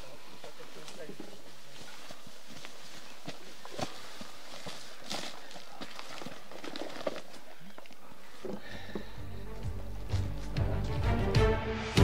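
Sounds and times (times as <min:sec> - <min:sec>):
footsteps on gravel: 0:00.0 - 0:11.0
music: 0:09.1 - 0:12.0.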